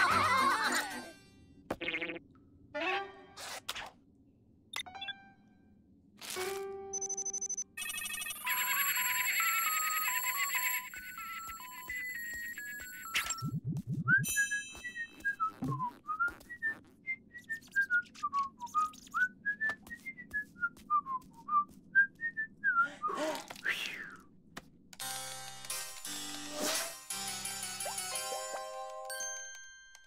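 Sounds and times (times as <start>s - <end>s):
electronic phone tones melody: 7.0s - 13.6s.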